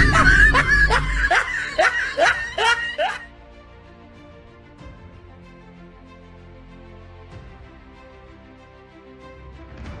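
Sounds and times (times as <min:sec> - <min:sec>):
person laughing: 0:00.0 - 0:03.3.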